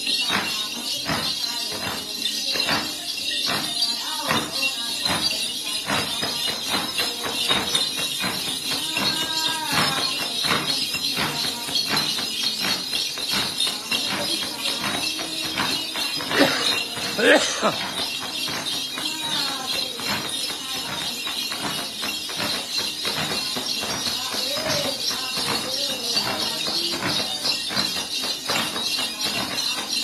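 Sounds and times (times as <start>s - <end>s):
small bells jingling: 0.0s - 30.0s.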